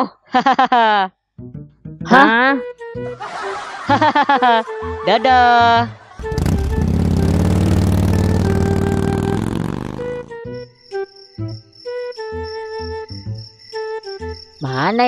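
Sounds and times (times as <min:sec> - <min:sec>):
scooter engine revving: 0:06.2 - 0:10.3
crickets chirping: 0:10.4 - 0:15.0.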